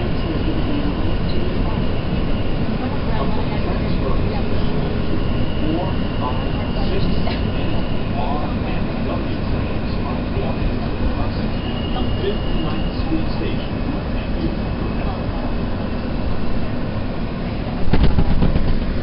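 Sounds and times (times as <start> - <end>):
thin high whine: 0.0 - 17.8
train wheels rumbling: 0.0 - 19.0.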